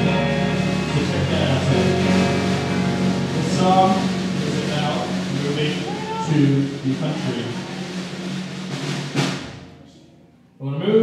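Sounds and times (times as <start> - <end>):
low guitar tone: 0.0 - 8.8
drum and cymbal hit: 0.0 - 9.8.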